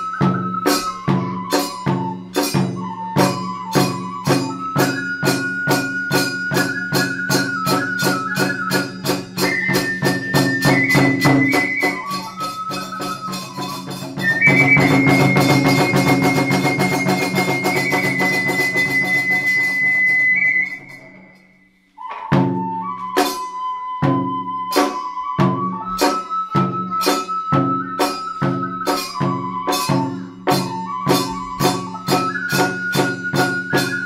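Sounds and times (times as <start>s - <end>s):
hand cymbals: 0.0s - 23.7s, 24.5s - 34.0s
bamboo flute melody: 0.0s - 34.0s
drums beating: 0.0s - 34.0s.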